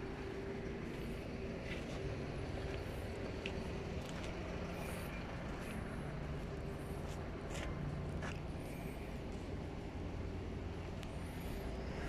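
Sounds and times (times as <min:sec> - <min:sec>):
excavator diesel engine humming: 0:00.0 - 0:12.0.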